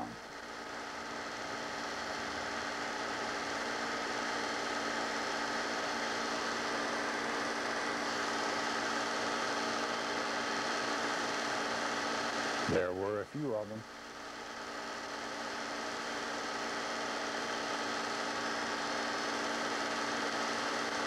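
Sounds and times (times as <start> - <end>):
electrical hum with hiss: 0.0 - 21.0.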